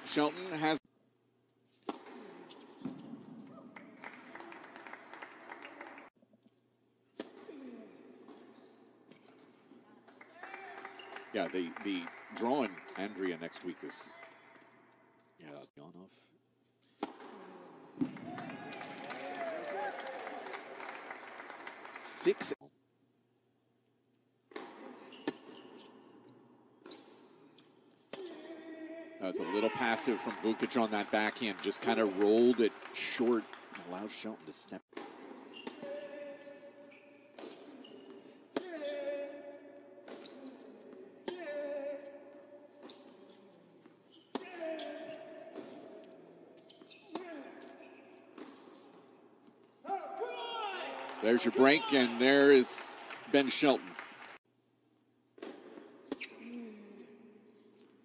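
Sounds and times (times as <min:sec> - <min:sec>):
racquet hitting tennis ball: 0:01.8 - 0:03.4, 0:17.0 - 0:18.2.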